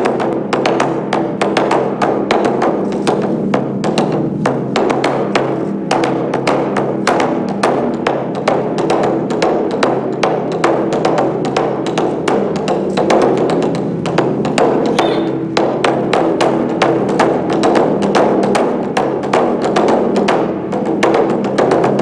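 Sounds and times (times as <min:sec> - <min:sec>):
large drums struck with sticks: 0:00.0 - 0:22.0.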